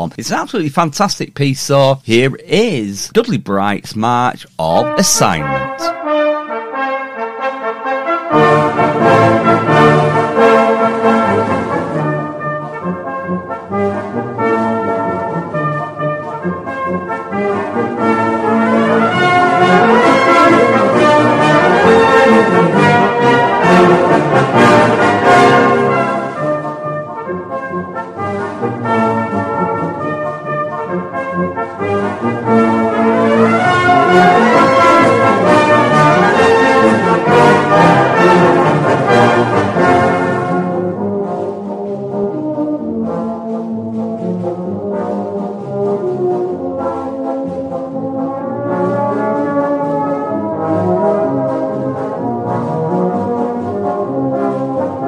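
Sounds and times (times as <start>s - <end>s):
brass band playing a march: 5.1s - 55.0s.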